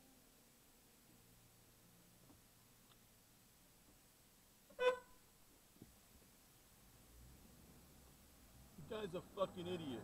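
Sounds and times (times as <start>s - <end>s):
short car horn toot: 4.7s - 5.2s.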